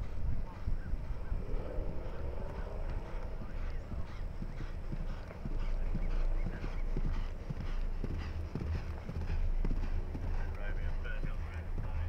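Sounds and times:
horse hoofbeats galloping on grass: 0:00.0 - 0:12.0.

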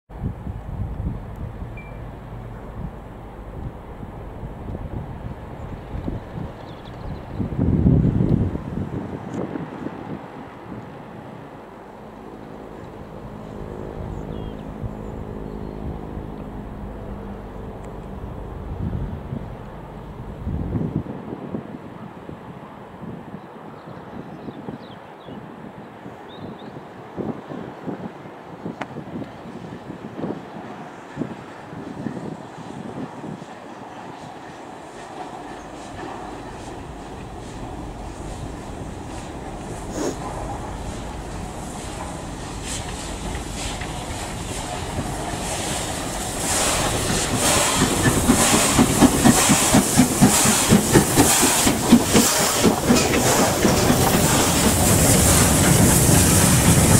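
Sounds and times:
steam locomotive chuffing: 0:32.0 - 0:56.9
loud rush: 0:36.5 - 0:56.9.

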